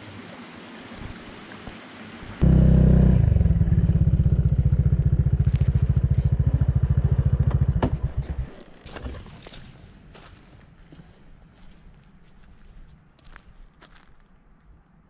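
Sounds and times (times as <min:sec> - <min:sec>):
motorcycle engine throbbing: 0:02.4 - 0:08.5.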